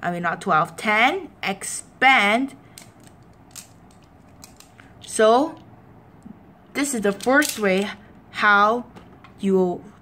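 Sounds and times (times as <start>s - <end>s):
plastic parts clicking and rattling: 2.8s - 4.8s, 7.0s - 8.0s.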